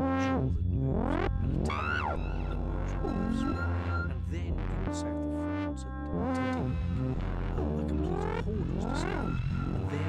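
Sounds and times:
gliding synthesizer tones: 0.0 - 4.2, 8.1 - 10.0
low synthesizer drone: 0.0 - 10.0
held high synthesizer tone: 1.2 - 4.2.

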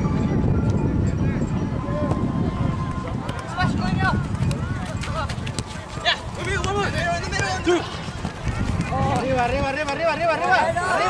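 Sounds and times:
people shouting and calling: 1.7 - 11.0.

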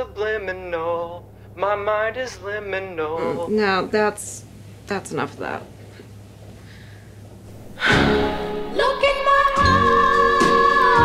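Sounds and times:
steady low hum: 0.0 - 11.0
woman breathing faintly: 5.8 - 8.1
music: 7.8 - 11.0.

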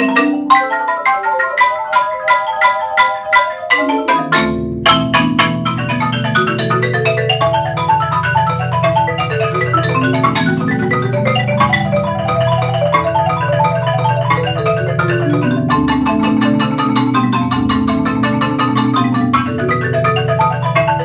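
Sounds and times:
marimbas playing: 0.0 - 21.0.

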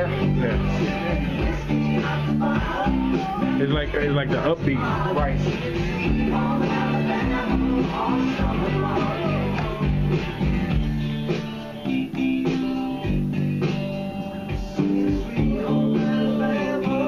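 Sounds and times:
electric bass guitar playing: 0.0 - 17.0
recorded rock song: 0.0 - 17.0.

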